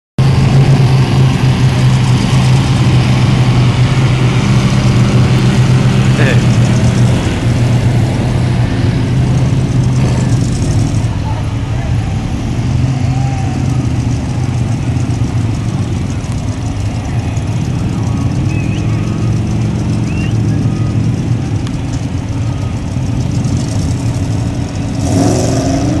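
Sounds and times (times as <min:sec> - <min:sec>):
truck engine droning loudly: 0:00.2 - 0:26.0
people talking: 0:06.2 - 0:06.6, 0:10.0 - 0:14.5, 0:15.6 - 0:22.9.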